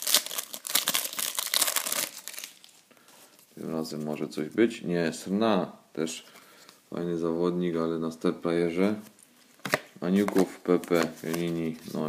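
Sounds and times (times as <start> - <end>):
foil wrapper crinkling and tearing: 0.0 - 2.8.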